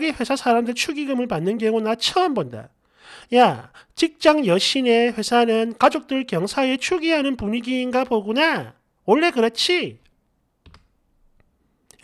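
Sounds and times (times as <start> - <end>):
computer mouse clicks: 10.6 - 12.0.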